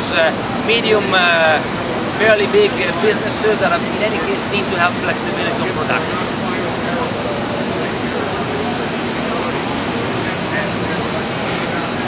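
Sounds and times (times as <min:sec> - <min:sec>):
faint voices: 0:00.0 - 0:12.0
high whine: 0:00.0 - 0:12.0.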